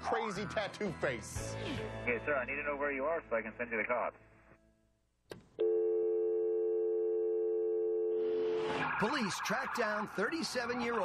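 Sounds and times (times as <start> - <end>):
steady telephone tone: 5.6 - 8.7
rush of noise: 8.4 - 10.2.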